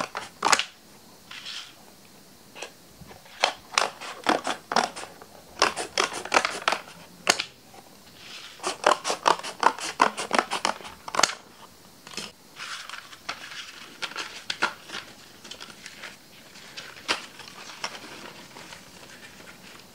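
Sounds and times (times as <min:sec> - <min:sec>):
cardboard rustling: 0:12.2 - 0:19.9.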